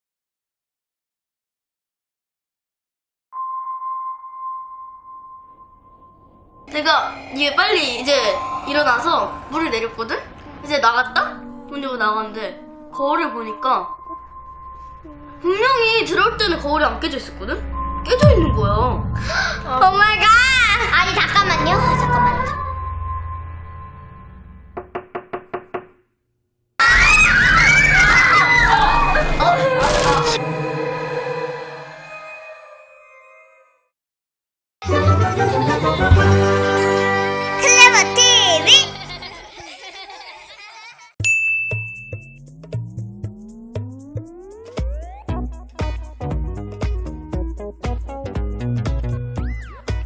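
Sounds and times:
bell-like ringing tone: 3.4s - 10.6s, 41.2s - 43.1s
music: 6.6s - 24.7s, 34.8s - 39.3s, 41.2s - 50.0s
knocking on door: 24.8s - 26.0s
loud music: 42.4s - 50.0s.

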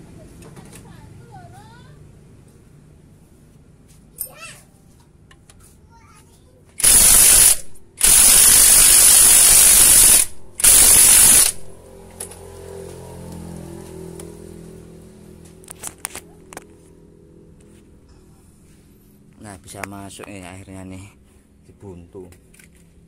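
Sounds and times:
pneumatic impact wrench bursts: 6.8s - 11.7s.

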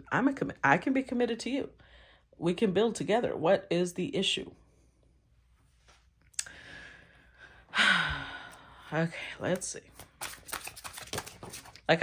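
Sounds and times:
woman sighing: 6.4s - 9.0s.

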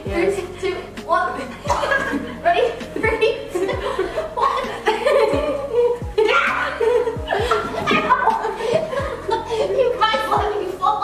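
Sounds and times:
young women laughing: 1.4s - 10.4s.

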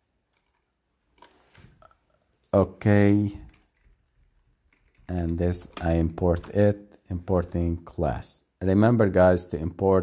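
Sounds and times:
faint keyboard clicks: 1.2s - 2.6s
person speaking: 1.9s - 4.1s, 4.8s - 10.0s.

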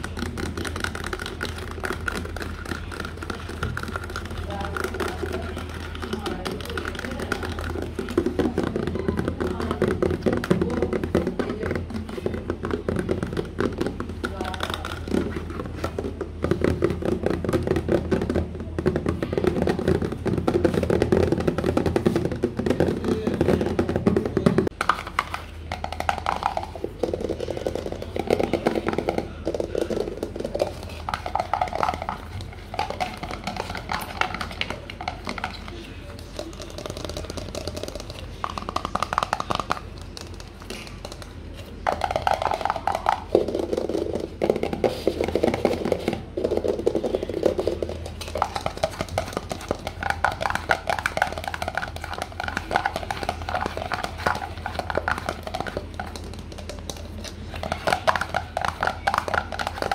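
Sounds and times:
fingers tapping plastic bottle: 0.0s - 59.9s
fingers tapping plastic bowl: 0.0s - 59.9s.

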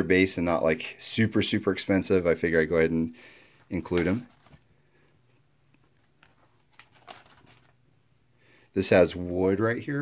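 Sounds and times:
plastic sleeves crinkling: 3.4s - 8.0s.

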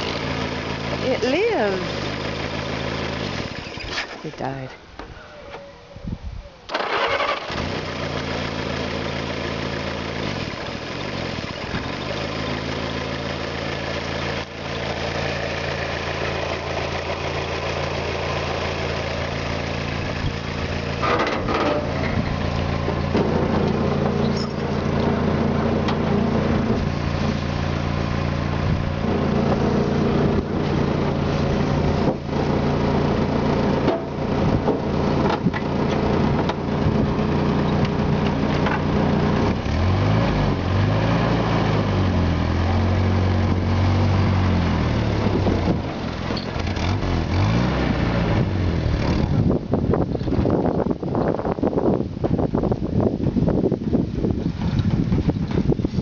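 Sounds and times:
engine starting and idling: 6.6s - 12.7s.

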